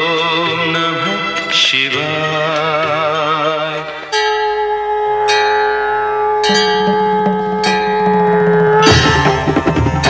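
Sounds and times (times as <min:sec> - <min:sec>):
bell ringing: 0:04.1 - 0:10.0
steady held drone: 0:04.4 - 0:10.0.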